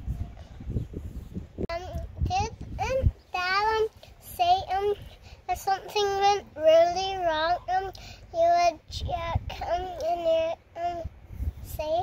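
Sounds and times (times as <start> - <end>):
girl singing wordless phrases: 1.7 - 12.0.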